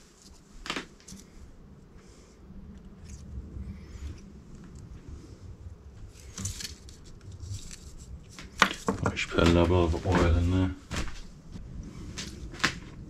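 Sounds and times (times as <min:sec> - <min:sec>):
faint rustles: 0:00.0 - 0:13.0
low steady hum: 0:00.0 - 0:13.0.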